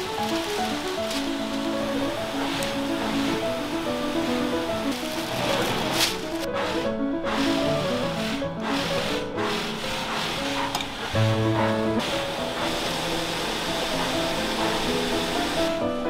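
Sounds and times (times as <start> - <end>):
light hiss: 0.0 - 16.0.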